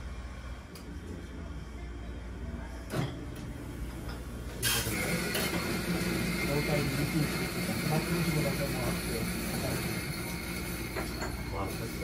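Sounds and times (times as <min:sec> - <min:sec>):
low steady hum: 0:00.0 - 0:04.6.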